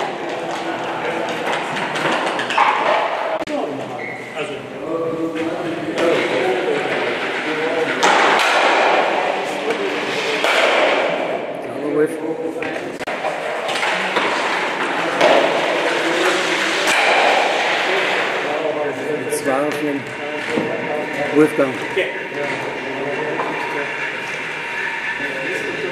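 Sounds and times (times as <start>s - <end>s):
people talking: 0.0s - 25.9s.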